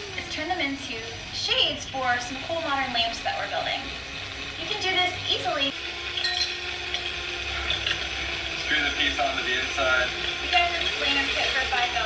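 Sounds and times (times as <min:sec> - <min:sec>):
cordless drill grinding into ceramic: 0:00.0 - 0:12.0.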